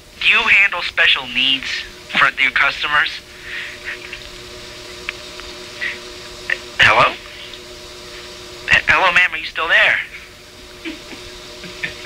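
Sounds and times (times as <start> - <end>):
telephone line hum: 0.0 - 12.0.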